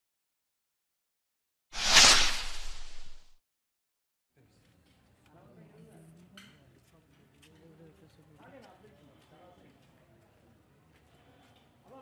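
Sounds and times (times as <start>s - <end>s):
whoosh with low rumble: 1.8s - 3.3s.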